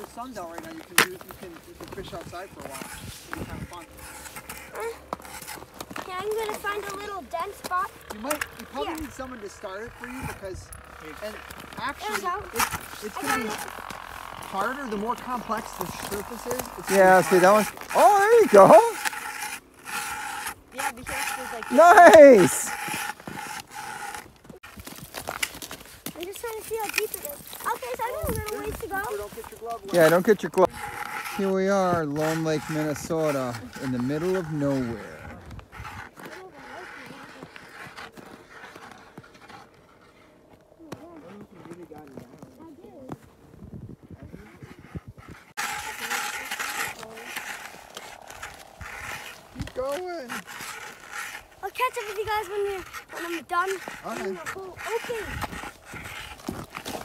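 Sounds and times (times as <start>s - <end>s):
ice auger scraping ice: 0.0s - 40.4s, 44.2s - 57.0s.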